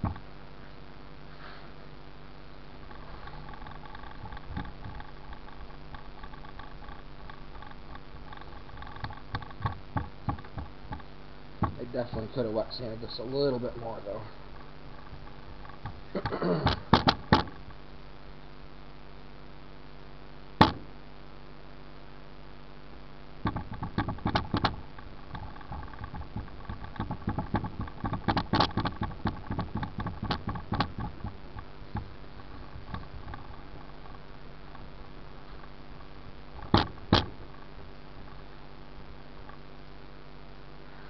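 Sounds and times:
sharp knock: 20.6 - 20.9.

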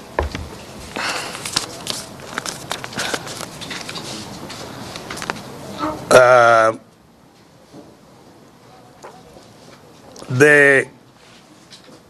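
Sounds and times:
rustling: 0.0 - 6.1.

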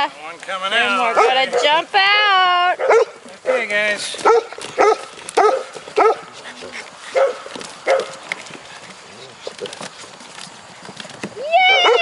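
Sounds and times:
puppies yipping: 2.8 - 11.0, 11.6 - 12.0.

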